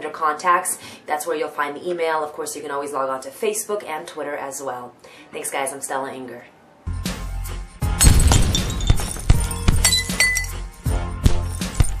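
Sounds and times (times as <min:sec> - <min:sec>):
music: 0:06.8 - 0:12.0
deep hit: 0:07.9 - 0:09.9
glass tinkling and clinking: 0:08.0 - 0:10.6, 0:11.3 - 0:12.0.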